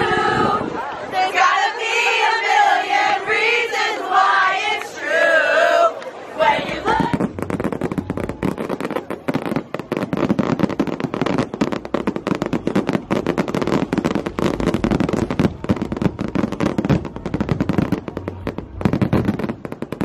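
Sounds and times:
fireworks bangs and crackles: 6.5s - 20.0s.

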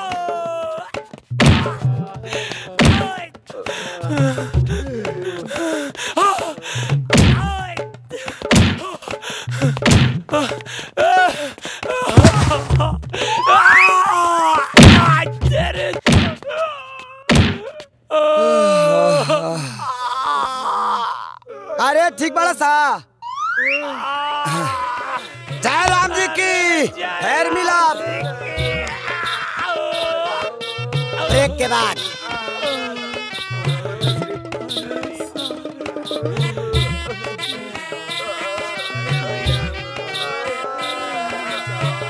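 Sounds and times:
man crying out in pain: 0.0s - 1.0s, 1.6s - 22.5s, 23.8s - 27.2s, 28.0s - 35.2s
heavy punch sound effects: 1.4s - 1.9s, 2.8s - 3.1s, 7.1s - 7.6s, 8.5s - 8.8s, 9.8s - 10.2s, 12.2s - 13.0s, 14.8s - 15.3s, 16.1s - 16.4s, 17.3s - 17.6s.

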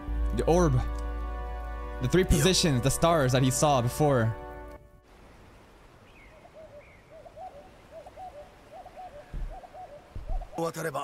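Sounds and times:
bird hooting coos: 6.1s - 10.6s
dull low thumps: 9.2s - 10.6s.

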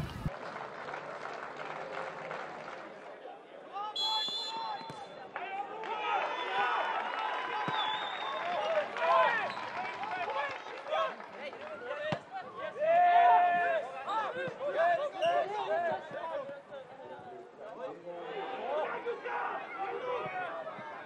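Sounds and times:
crowd murmur: 0.0s - 3.2s
referee whistle blast: 4.0s - 5.1s.

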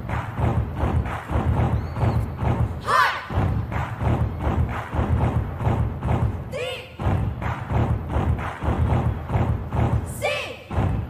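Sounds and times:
heavy kick drum: 0.0s - 11.0s
pop dance song: 0.0s - 11.0s.

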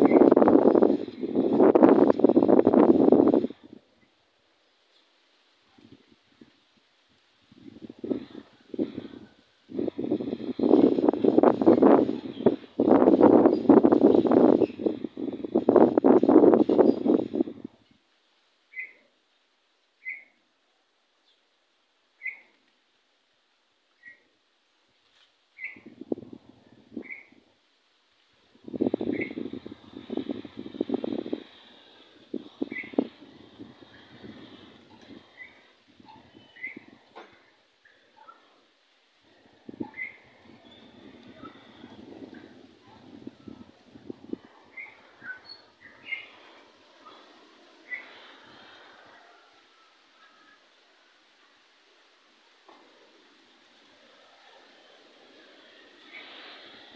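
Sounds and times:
small bird chirping: 18.7s - 19.1s, 20.0s - 20.4s, 22.2s - 22.6s, 25.6s - 26.0s, 26.9s - 27.4s, 28.8s - 31.6s, 32.6s - 37.0s, 39.7s - 43.7s, 44.4s - 48.3s.

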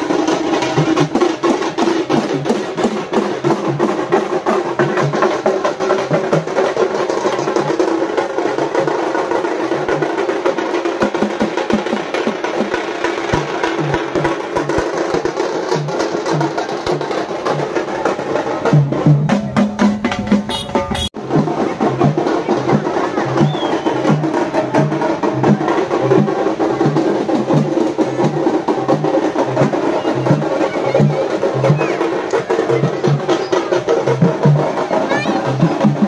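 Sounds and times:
fast loud drumming: 0.0s - 36.0s.

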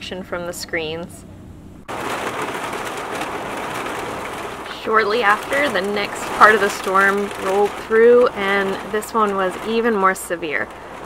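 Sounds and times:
heavy rain on camper trailer: 1.8s - 11.0s.

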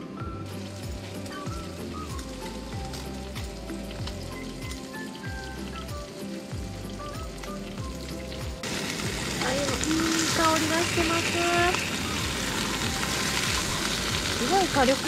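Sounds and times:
background music with beat: 0.0s - 15.0s
rain hiss: 0.0s - 15.0s.

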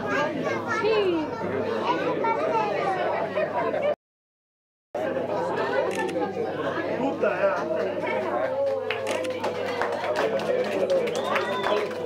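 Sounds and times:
crowd chatter indoors: 0.0s - 4.0s, 5.0s - 12.0s.

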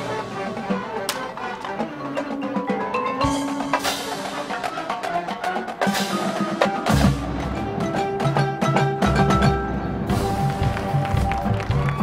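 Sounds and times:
marching band wind notes: 0.0s - 12.0s.

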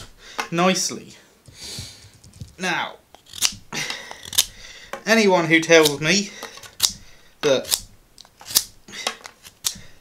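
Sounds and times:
blade scraping wood: 3.2s - 4.6s
knife slicing wood: 3.2s - 4.6s.

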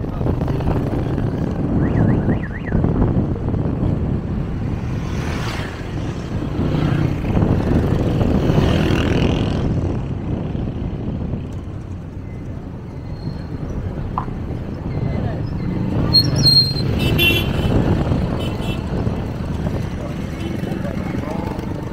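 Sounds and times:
cars passing: 0.0s - 21.9s
motorcycles passing: 0.0s - 21.9s.

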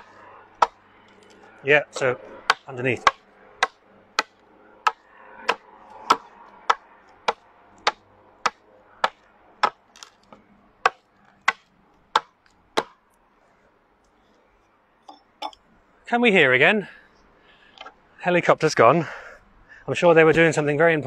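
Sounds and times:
hand axe chopping wood: 0.0s - 0.8s, 2.0s - 13.0s.

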